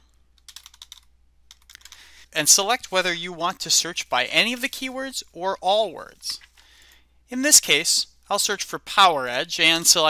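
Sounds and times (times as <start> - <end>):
faint keyboard typing: 0.3 - 3.0.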